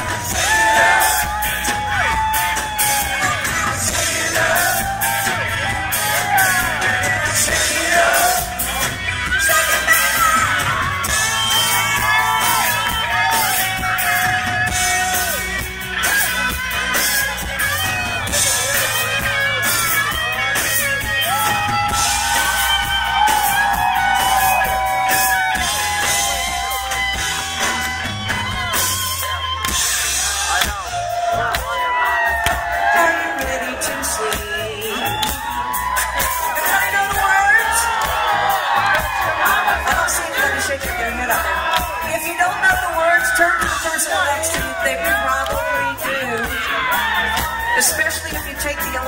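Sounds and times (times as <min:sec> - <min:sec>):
crowd whooping: 0:00.0 - 0:49.0
live rock band playing: 0:00.0 - 0:49.0.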